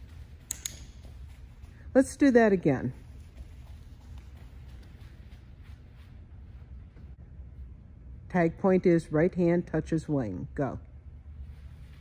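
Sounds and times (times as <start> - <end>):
footsteps on artificial turf: 0.0 - 8.1, 11.3 - 12.0
steady low hum: 0.0 - 12.0.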